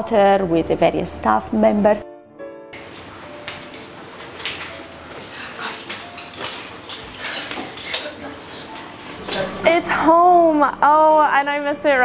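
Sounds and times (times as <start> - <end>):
people talking: 0.0 - 2.0, 9.2 - 12.0
woman's voice: 0.0 - 2.0, 8.1 - 12.0
dishes and cutlery clinking: 2.8 - 9.9.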